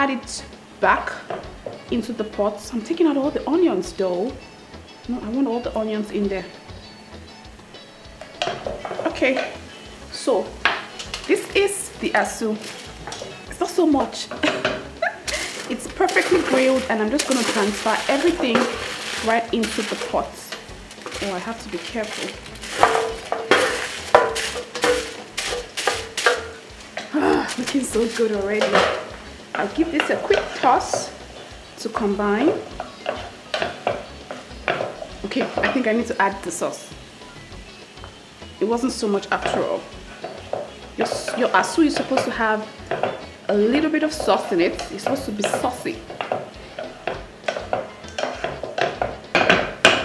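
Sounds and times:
wooden spatula scraping tray: 0:10.2 - 0:36.0, 0:39.4 - 0:49.8
wooden spatula stirring meat in sauce: 0:14.4 - 0:31.2.

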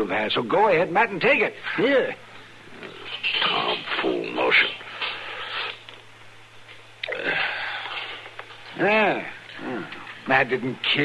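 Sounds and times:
low steady hum: 0:00.0 - 0:11.0
man sighing and groaning: 0:07.0 - 0:08.2.

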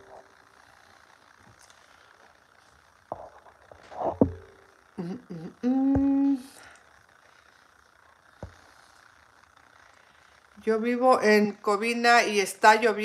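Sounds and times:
knock: 0:04.1 - 0:04.5
woman humming: 0:05.0 - 0:06.8.

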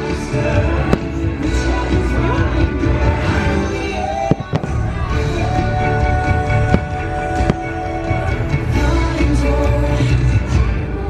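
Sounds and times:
loud music: 0:00.0 - 0:11.0
fireworks bangs: 0:04.2 - 0:05.1.

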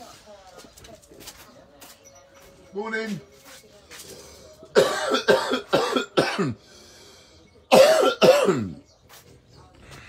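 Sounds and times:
man coughing: 0:04.8 - 0:06.6, 0:07.7 - 0:08.8.

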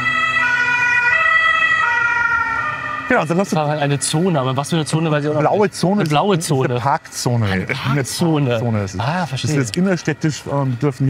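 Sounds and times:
two-tone emergency siren: 0:00.0 - 0:07.1.

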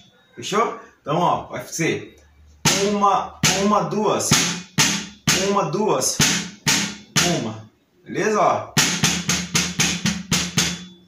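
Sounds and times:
drumsticks striking practice pad: 0:02.6 - 0:07.6, 0:08.8 - 0:11.0.

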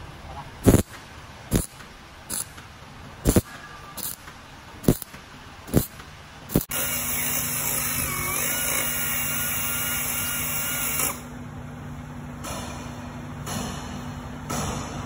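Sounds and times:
welder crackle: 0:00.6 - 0:11.2
power tool whine: 0:06.7 - 0:11.3.

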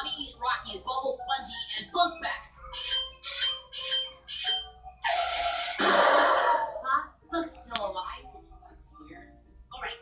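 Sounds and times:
harsh noisy sound effect: 0:05.1 - 0:06.7.

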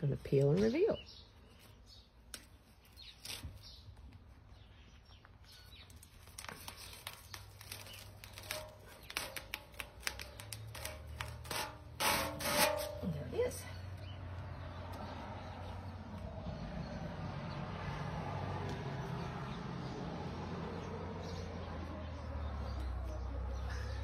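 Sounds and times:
stencil peeling off metal crackling: 0:02.3 - 0:03.9, 0:05.8 - 0:13.3.

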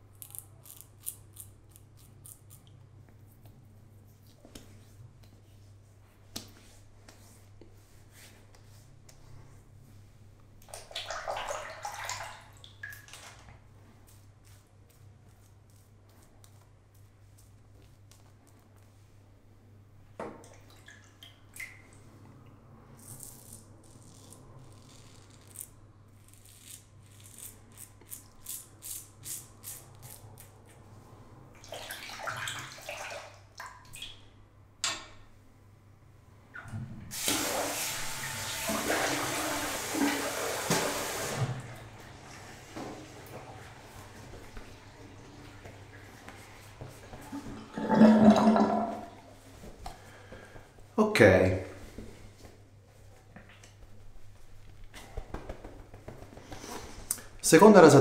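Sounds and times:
water running: 0:10.6 - 0:13.6, 0:37.1 - 0:49.4
water splashing: 0:10.7 - 0:13.3.

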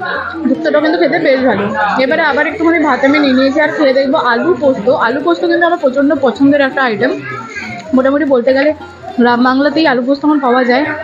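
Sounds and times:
children's voices: 0:00.0 - 0:04.7, 0:06.9 - 0:09.2, 0:10.2 - 0:11.0
woman talking: 0:00.4 - 0:07.3, 0:07.9 - 0:11.0.

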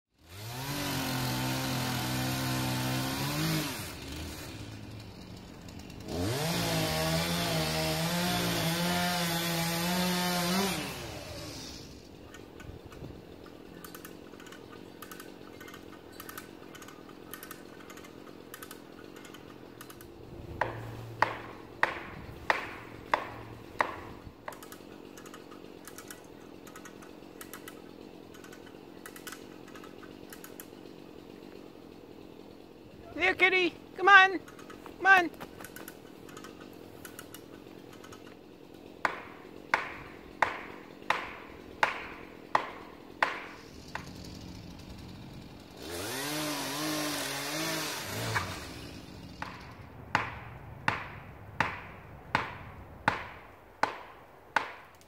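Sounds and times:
chainsaw revving and cutting: 0:00.2 - 0:50.3
sharp blows on tree: 0:20.6 - 0:24.6, 0:39.0 - 0:44.1, 0:49.4 - 0:54.9.

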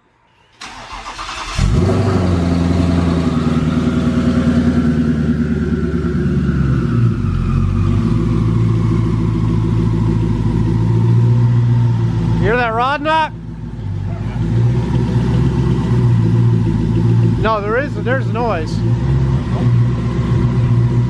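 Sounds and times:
car engine starting and idling: 0:00.0 - 0:21.0.

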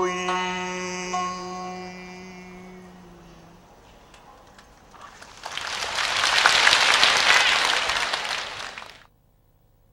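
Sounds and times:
audience applauding: 0:04.0 - 0:09.1.

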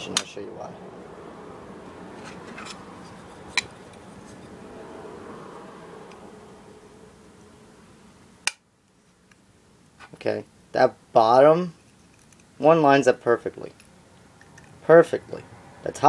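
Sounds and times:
faint steady hiss: 0:00.0 - 0:16.0.

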